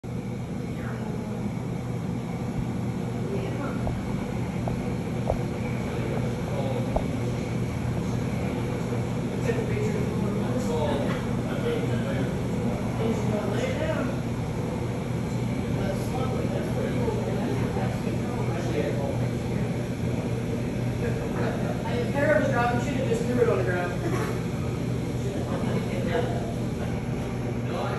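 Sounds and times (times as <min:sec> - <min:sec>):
helicopter hovering: 0:00.0 - 0:27.9.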